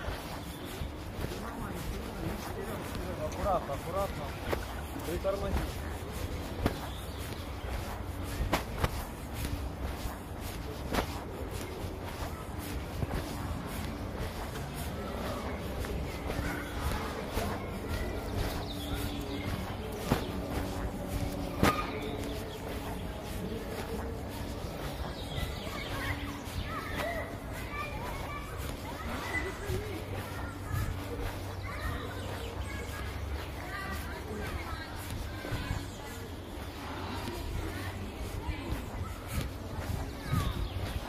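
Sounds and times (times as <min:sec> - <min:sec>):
footsteps on asphalt: 0:00.0 - 0:41.0.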